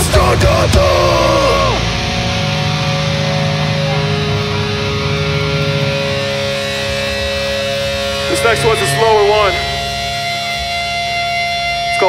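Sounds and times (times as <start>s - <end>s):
electric guitar chord ringing: 0.0s - 12.0s
low amp rumble: 0.0s - 12.0s.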